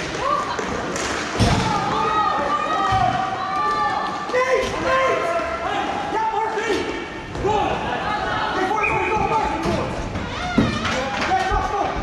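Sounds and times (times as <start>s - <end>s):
hockey sticks and puck knocking: 9.6s - 12.0s.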